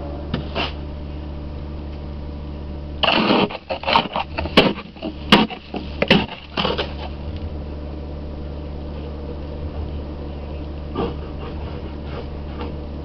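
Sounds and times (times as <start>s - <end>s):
idling car hum: 0.0s - 13.0s
ice scraper scraping car glass: 3.0s - 7.1s.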